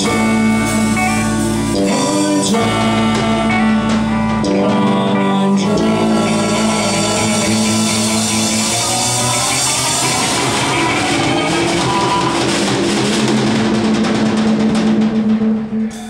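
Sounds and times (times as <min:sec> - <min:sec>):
held electric guitar notes: 0:00.0 - 0:14.7
drum kit fills: 0:00.0 - 0:16.0.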